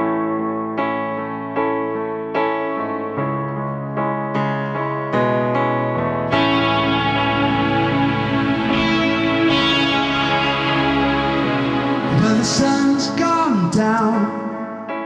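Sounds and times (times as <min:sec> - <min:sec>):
electric piano chords: 0:00.0 - 0:15.0
live band playing: 0:06.3 - 0:14.3.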